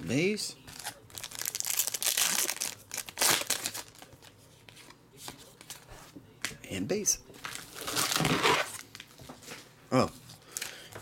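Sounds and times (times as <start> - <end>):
foil wrapper crinkling: 0.7 - 4.3.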